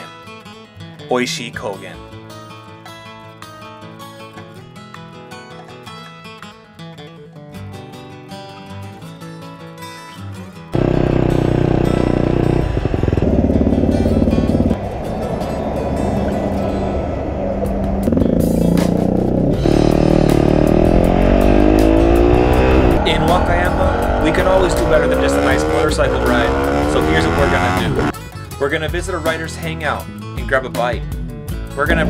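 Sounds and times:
acoustic guitar music: 0.0s - 26.8s
motorcycle engine accelerating: 10.8s - 28.2s.

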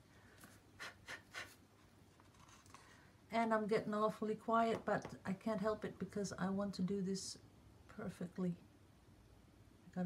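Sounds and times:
scratchy plastic handling rustles: 1.8s - 3.0s.

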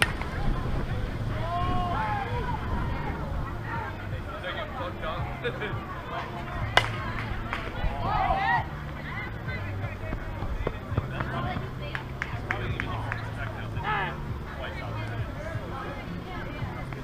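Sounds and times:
bat hitting softball: 0.0s - 0.4s, 6.7s - 8.0s
players shouting: 0.0s - 17.0s.

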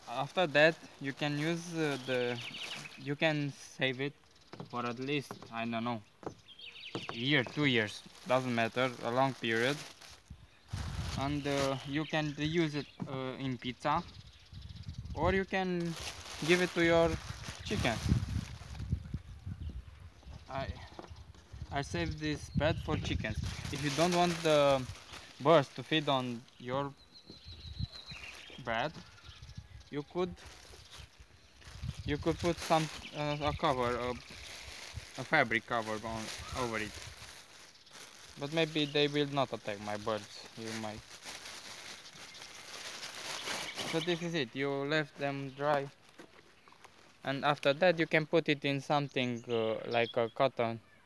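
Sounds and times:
plastic bag crinkling: 0.0s - 3.0s, 6.9s - 12.0s, 15.8s - 18.9s, 23.4s - 26.2s, 30.3s - 44.3s
person speaking: 7.1s - 9.9s, 15.2s - 18.1s, 21.8s - 27.0s, 32.1s - 34.4s, 35.1s - 37.0s, 38.4s - 41.1s.

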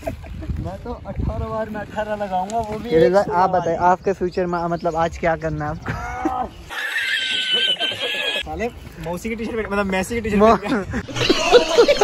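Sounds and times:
man laughing in high squeals: 5.9s - 8.4s, 11.0s - 12.0s.

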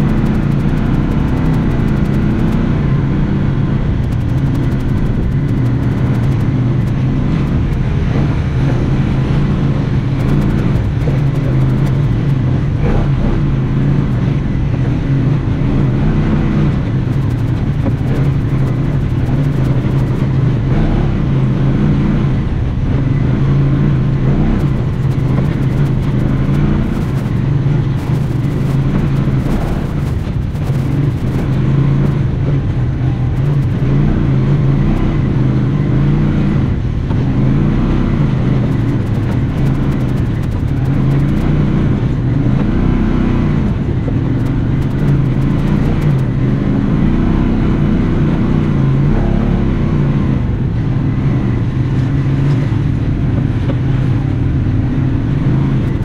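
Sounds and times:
utility vehicle engine running: 0.0s - 56.0s.

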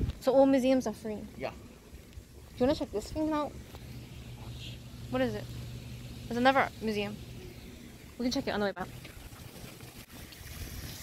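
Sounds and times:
wind rumbling on microphone: 0.0s - 0.3s, 10.2s - 11.0s
fountain water splashing: 8.0s - 11.0s.

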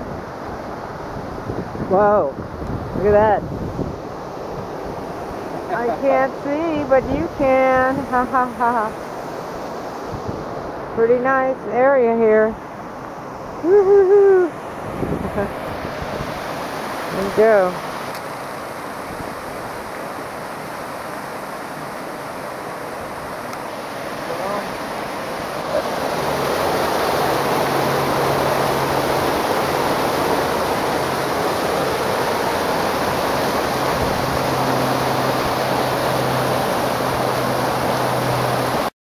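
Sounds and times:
waterfall splashing into pool: 16.5s - 38.9s.

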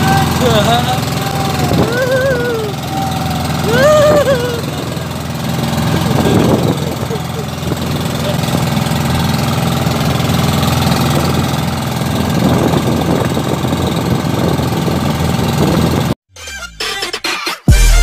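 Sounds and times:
brief voices: 0.0s - 5.1s
wind and water rushing: 0.0s - 16.1s
boat engine humming: 0.0s - 16.2s.

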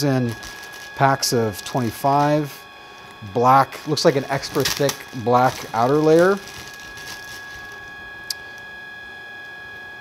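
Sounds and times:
plastic wrapper rustling: 0.0s - 2.3s, 3.0s - 8.7s
high electrical hum: 0.0s - 10.0s.

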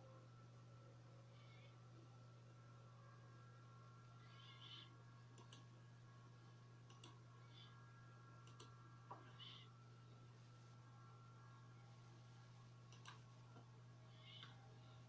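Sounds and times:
steady low hum: 0.0s - 15.0s
computer mouse clicks: 4.6s - 5.7s, 6.8s - 7.2s, 8.4s - 8.8s, 12.9s - 13.6s.

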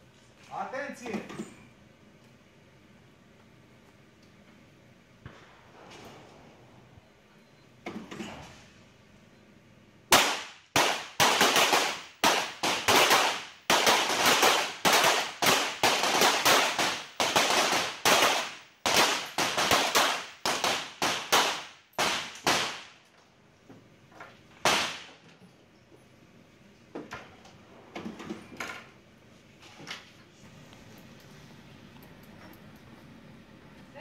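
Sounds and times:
pistol shots echoing: 10.1s - 23.0s.

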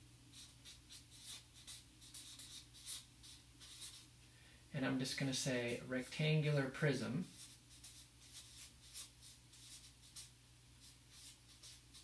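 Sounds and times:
marker pen scratching on paper: 0.3s - 4.1s, 6.4s - 12.0s.

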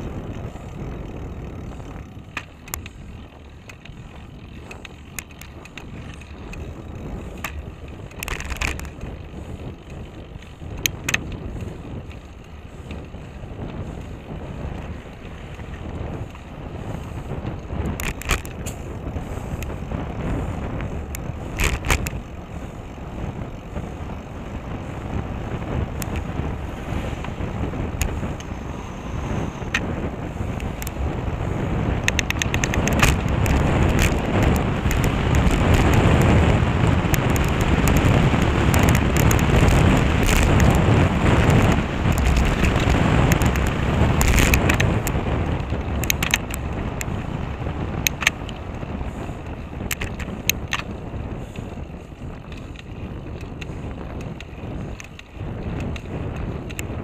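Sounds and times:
tyre and road noise: 0.0s - 57.0s
wind on microphone: 0.0s - 57.0s
sharp clicks: 32.0s - 36.4s, 41.4s - 47.3s, 48.0s - 48.6s.

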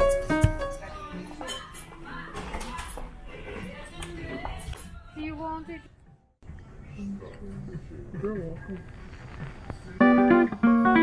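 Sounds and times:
faint music: 0.0s - 11.0s
people talking: 0.8s - 6.0s.

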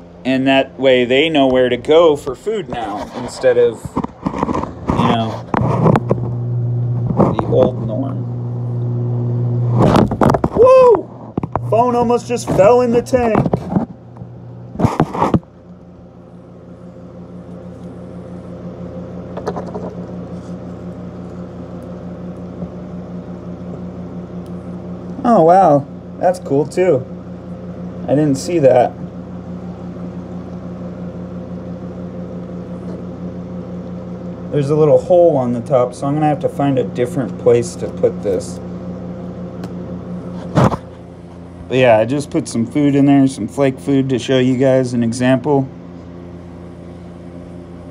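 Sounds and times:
aquarium pump humming: 0.0s - 47.9s.

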